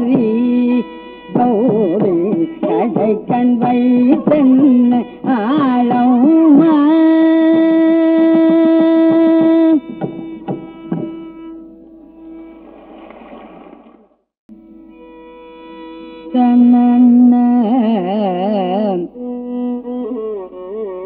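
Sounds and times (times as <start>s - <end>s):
drum strokes: 12.2s - 14.1s.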